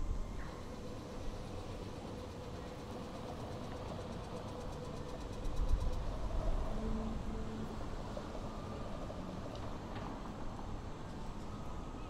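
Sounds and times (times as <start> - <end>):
city traffic hum: 0.0 - 12.0.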